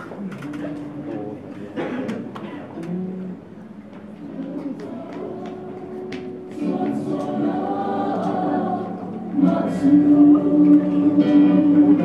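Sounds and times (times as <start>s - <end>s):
group singing long held notes: 4.2s - 12.0s.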